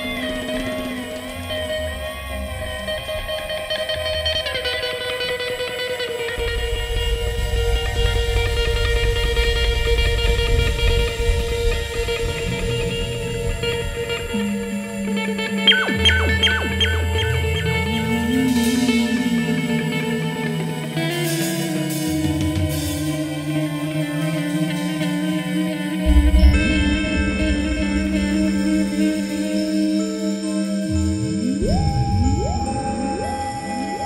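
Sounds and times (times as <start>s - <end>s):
sustained electric guitar tones: 0.0s - 34.0s
synthesizer tones: 15.6s - 19.7s, 31.2s - 34.0s
low bass: 15.7s - 19.0s
short picked guitar notes: 15.7s - 19.0s.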